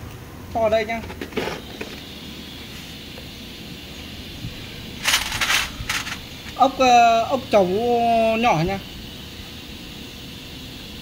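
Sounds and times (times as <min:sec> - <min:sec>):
small steel parts clinking: 0:05.0 - 0:06.6
metallic rattling: 0:05.0 - 0:06.7.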